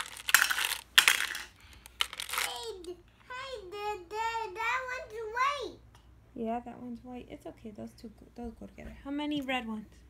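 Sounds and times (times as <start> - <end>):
marbles clinking into a cup: 0.0 - 2.8.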